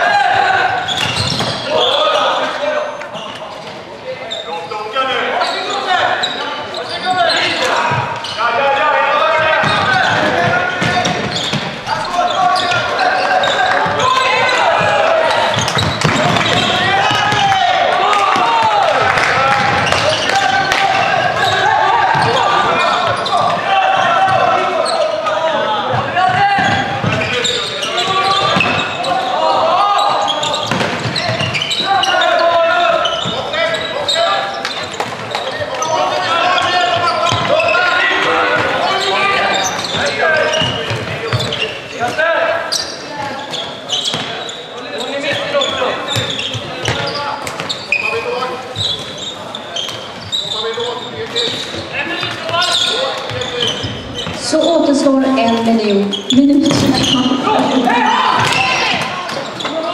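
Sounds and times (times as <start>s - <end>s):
people calling and shouting: 0.0s - 59.9s.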